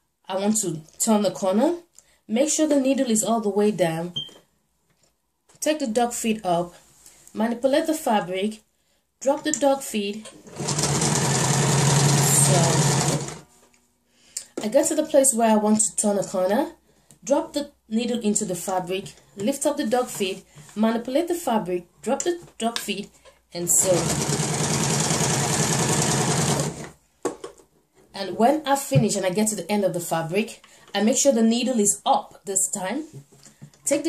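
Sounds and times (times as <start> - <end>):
electric sewing machine running: 10.5 - 13.4, 23.7 - 26.9.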